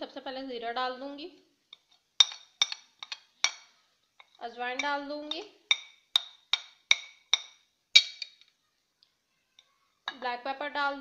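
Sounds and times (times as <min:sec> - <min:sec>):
metal spoon clinking on glass plate: 0:02.2 - 0:03.7, 0:04.8 - 0:08.4.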